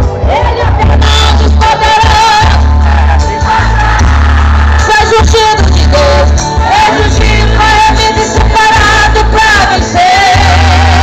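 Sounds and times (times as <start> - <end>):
gospel worship music: 0.0 - 11.0
singer holding long notes: 0.2 - 11.0.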